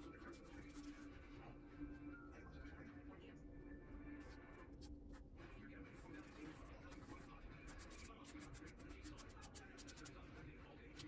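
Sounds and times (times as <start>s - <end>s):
pastel stick rubbing on paper: 5.9s - 11.0s.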